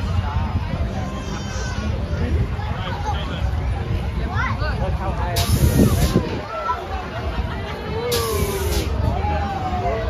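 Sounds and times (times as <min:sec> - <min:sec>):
high hiss: 0:05.4 - 0:06.2, 0:08.1 - 0:09.0.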